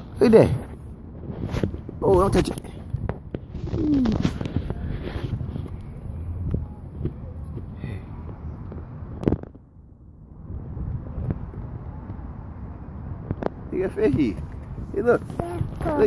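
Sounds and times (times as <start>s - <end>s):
light wind noise: 0.0s - 16.0s.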